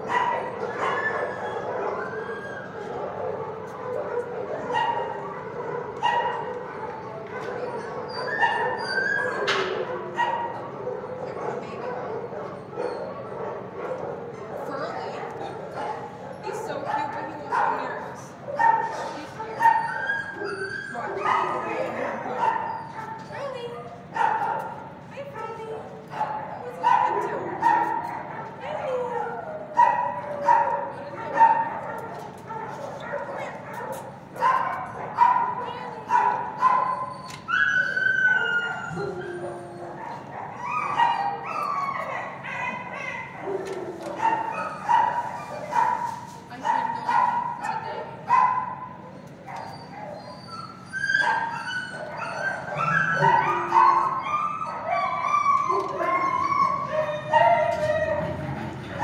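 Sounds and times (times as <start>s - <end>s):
dogs barking and yipping: 0.0s - 25.1s, 25.8s - 59.0s.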